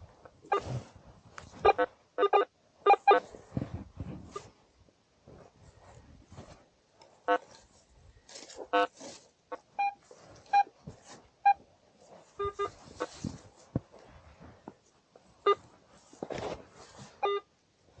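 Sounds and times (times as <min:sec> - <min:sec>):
metal detector beeps: 0:09.8 - 0:10.7, 0:11.4 - 0:11.6, 0:12.4 - 0:12.8, 0:17.2 - 0:17.5.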